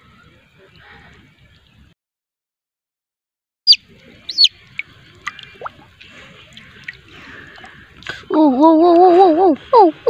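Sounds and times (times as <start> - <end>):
high falling chirps: 3.7 - 4.6
small splashes: 3.9 - 8.3
water dripping and sloshing: 3.9 - 8.3.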